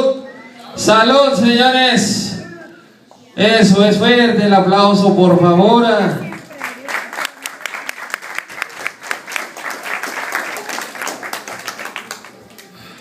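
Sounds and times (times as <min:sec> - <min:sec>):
crowd applauding: 0:06.3 - 0:13.0.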